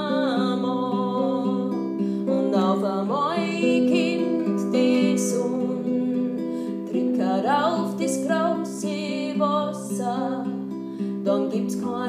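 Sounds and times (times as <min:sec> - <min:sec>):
classical guitar chords: 0:00.0 - 0:12.0
woman singing slow song: 0:00.0 - 0:12.0.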